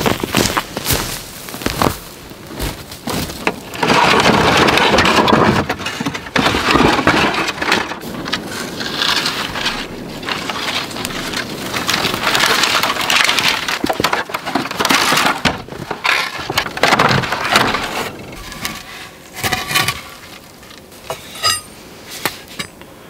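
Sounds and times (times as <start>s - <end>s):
wooden shingles clattering: 0.0s - 21.7s.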